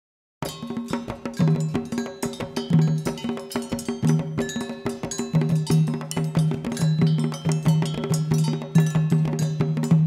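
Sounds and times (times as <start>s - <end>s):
bright metallic percussion accents: 0.4s - 10.0s
percussion ensemble drumming: 0.4s - 10.0s.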